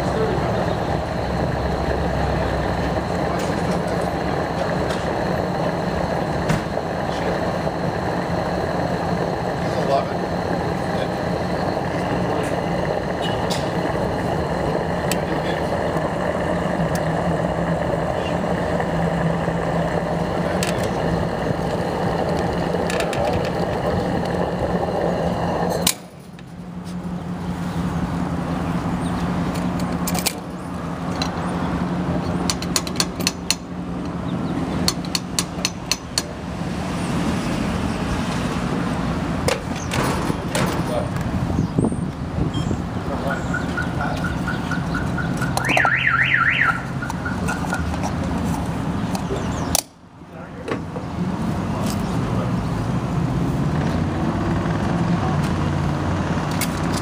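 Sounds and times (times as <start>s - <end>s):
fuel nozzle rushing and humming: 0.0s - 57.0s.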